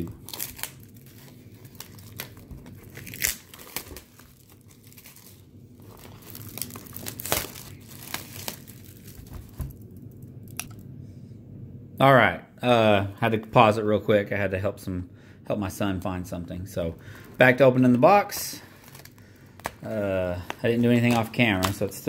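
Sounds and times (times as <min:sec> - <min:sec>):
plastic wrap crinkling and ripping: 0:00.0 - 0:10.7, 0:17.1 - 0:22.0.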